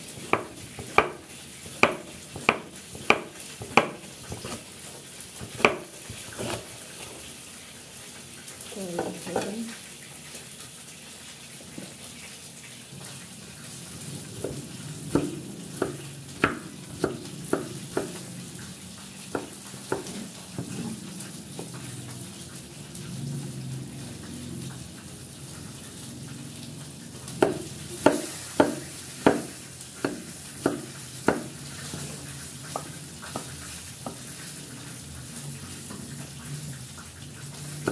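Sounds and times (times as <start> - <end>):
cleaver chopping on wooden block: 0.2 - 1.2, 1.8 - 4.6, 5.5 - 6.6, 27.4 - 31.5.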